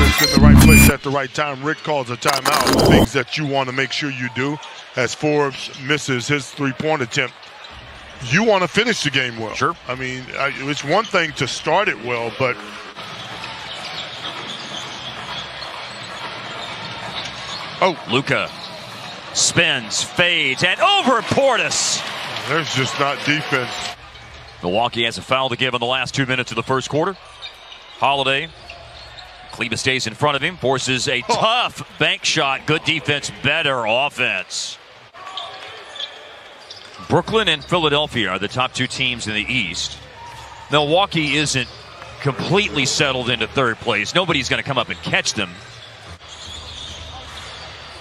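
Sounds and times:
basketball game court noise: 0.0 - 48.0
low arena background noise: 0.0 - 48.0
sneaker squeaks: 13.1 - 17.8, 35.3 - 37.0, 45.6 - 48.0.

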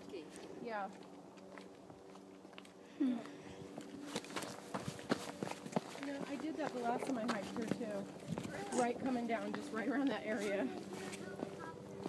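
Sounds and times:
faint steady hum: 0.0 - 12.0
footsteps crunching on sandstone: 3.6 - 12.0.

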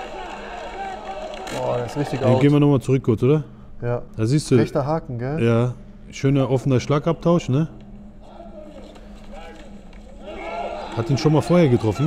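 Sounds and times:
muffled voices: 0.0 - 12.0
low steady hum: 2.2 - 12.0.

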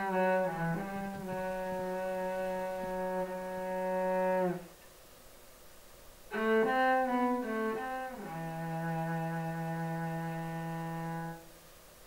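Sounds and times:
cello bowing low note: 0.0 - 4.7, 6.3 - 11.4.

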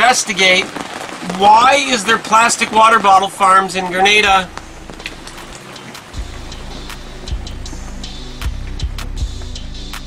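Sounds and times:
rain falling on boat deck: 0.0 - 10.0
music with slow bass beat: 4.1 - 10.0.

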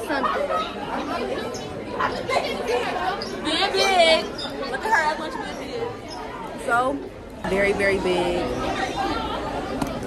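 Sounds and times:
teenagers chatting: 0.0 - 10.0.

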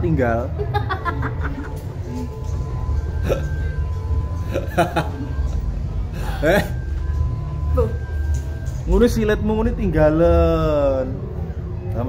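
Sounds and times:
steady low hum: 0.0 - 12.0
woman giggling: 0.6 - 2.3, 4.5 - 5.4.

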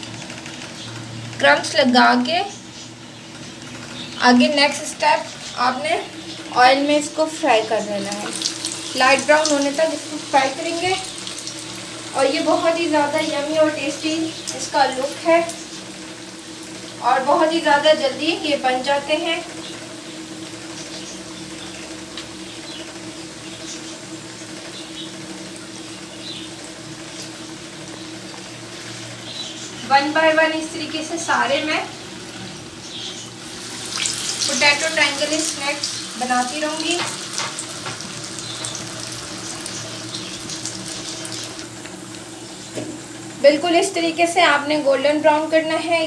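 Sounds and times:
food deep-frying in oil: 0.0 - 46.0.

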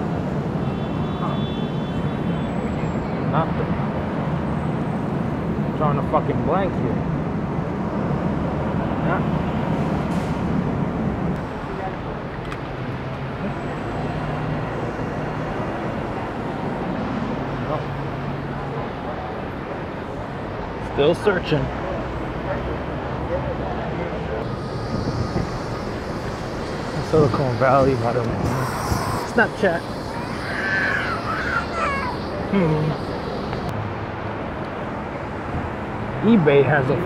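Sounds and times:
pedestrians talking: 0.0 - 37.0
traffic rumble on wet roads: 0.0 - 37.0
faint voices of passers-by: 11.4 - 35.3
high hiss: 24.4 - 33.7
short rising pitched sound: 24.4 - 33.7.

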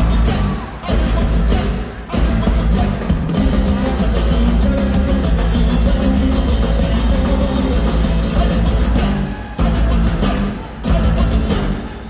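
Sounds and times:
acoustic guitars: 0.0 - 12.0
drum kit: 0.0 - 12.0
live band playing: 0.0 - 12.0.

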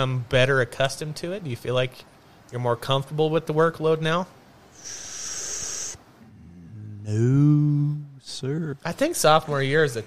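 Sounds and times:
breath hissing through teeth: 4.7 - 6.1
low humming voice: 4.8 - 8.8.

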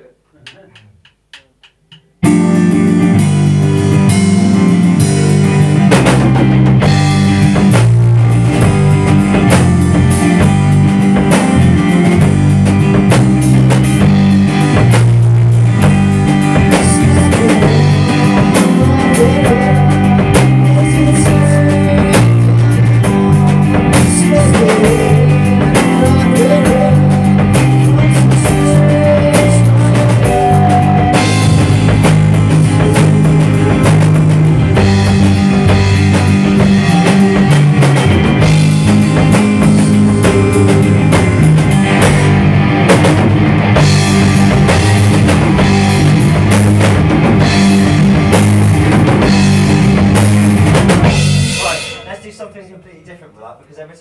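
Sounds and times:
drum kit: 0.0 - 53.4
electric guitar riff: 2.0 - 52.9
rock band playing loud: 2.2 - 52.8.

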